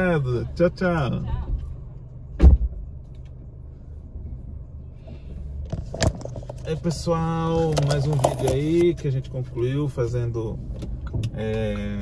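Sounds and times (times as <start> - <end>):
car engine idling: 0.0 - 12.0
car door shutting: 2.4 - 2.8.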